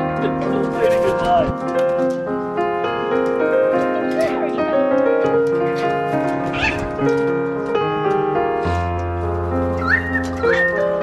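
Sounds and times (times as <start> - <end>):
piano background music: 0.0 - 11.0
cockatoo calls: 6.5 - 6.9, 9.8 - 11.0.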